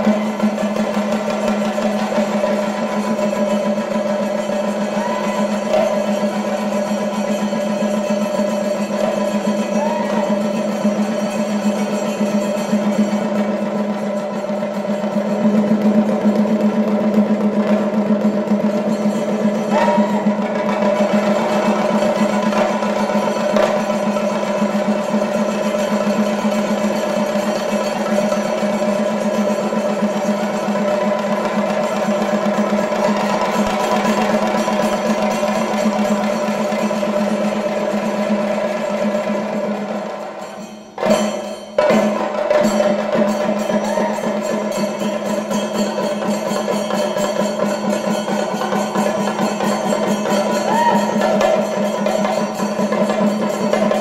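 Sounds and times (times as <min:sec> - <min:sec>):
drums playing fast roll: 0:00.0 - 0:54.0.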